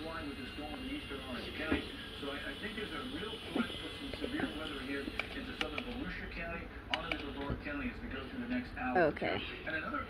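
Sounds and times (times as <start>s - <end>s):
sharp clicks: 5.2s - 6.0s, 6.9s - 7.4s.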